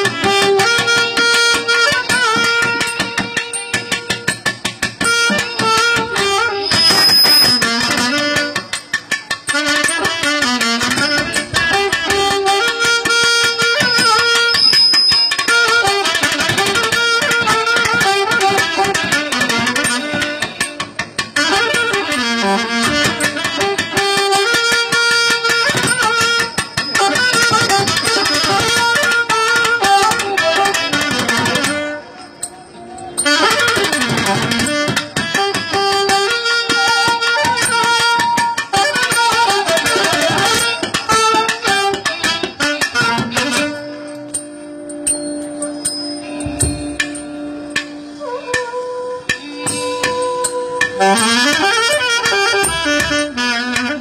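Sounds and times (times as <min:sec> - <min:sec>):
drum quick strokes: 0:00.0 - 0:32.6, 0:45.8 - 0:48.0.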